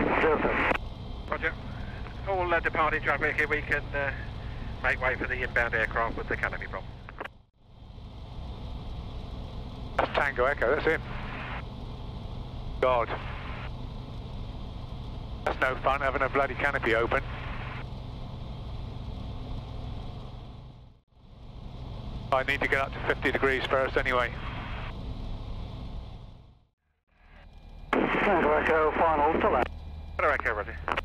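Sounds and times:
aircraft piston engine idling: 0.8s - 30.9s.

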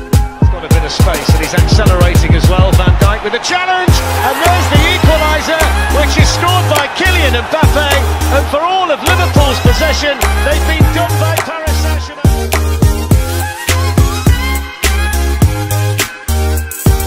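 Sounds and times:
hip-hop music with deep bass: 0.0s - 17.0s.

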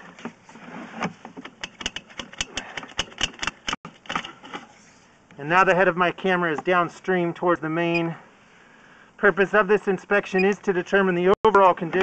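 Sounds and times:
inspection camera clicking and rattling in pipe: 1.6s - 4.2s.

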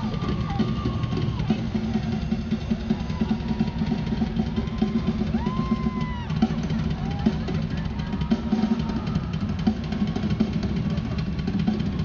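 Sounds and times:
drum solo with cymbals: 0.0s - 12.0s.

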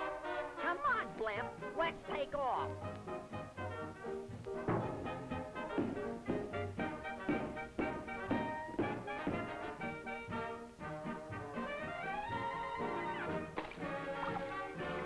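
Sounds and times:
orchestral cartoon music with brass: 0.0s - 15.0s.

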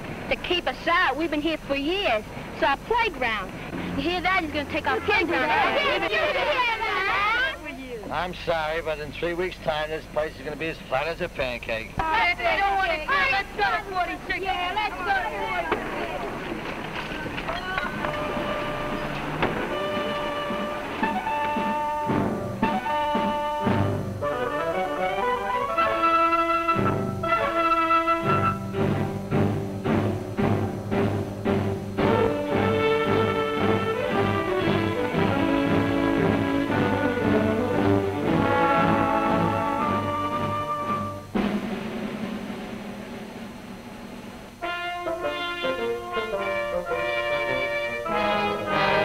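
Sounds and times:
soundtrack hiss: 0.0s - 49.0s
orchestral music: 17.7s - 43.4s, 44.6s - 49.0s
orchestral percussion hit: 38.3s - 45.5s.

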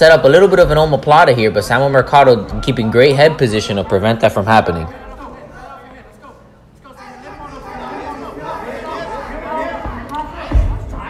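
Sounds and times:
crowd calling out and chattering: 0.0s - 11.0s.

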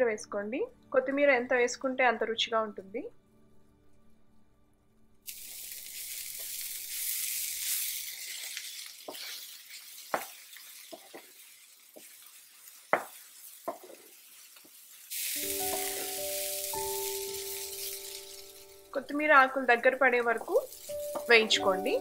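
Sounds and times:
vegetables sizzling in oil: 5.3s - 22.0s.

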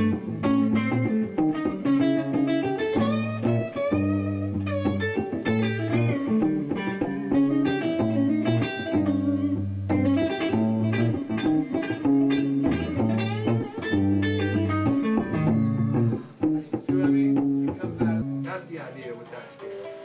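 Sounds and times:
electric guitar melody: 0.0s - 20.0s
low held guitar notes: 0.0s - 20.0s.

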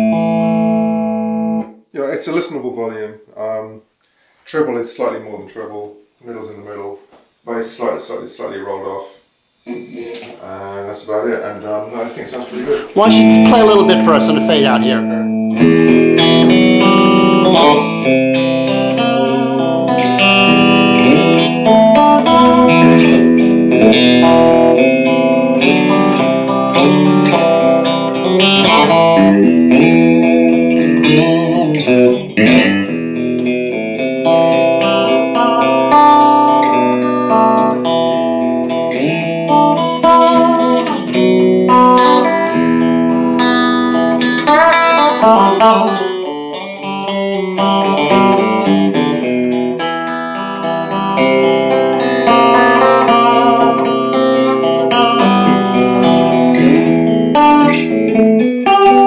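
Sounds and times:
clean electric guitar solo: 0.0s - 1.8s, 12.7s - 59.0s.

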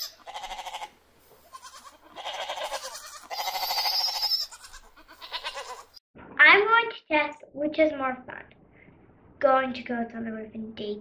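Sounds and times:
goats bleating: 0.0s - 6.0s.

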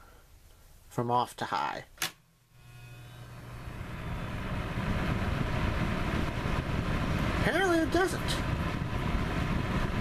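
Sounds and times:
fan heater blowing air: 0.0s - 10.0s.

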